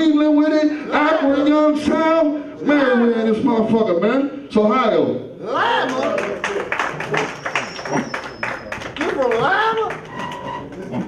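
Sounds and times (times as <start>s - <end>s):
audience clapping: 5.8s - 11.0s.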